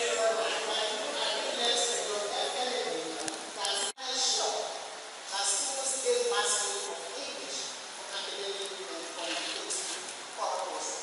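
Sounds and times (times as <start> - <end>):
woman lecturing into a microphone: 0.0 - 11.0.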